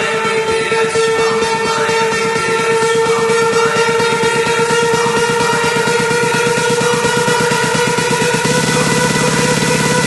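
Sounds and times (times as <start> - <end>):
buzzy synth note: 0.0 - 10.0
fast pulsing dance beat: 0.0 - 10.0.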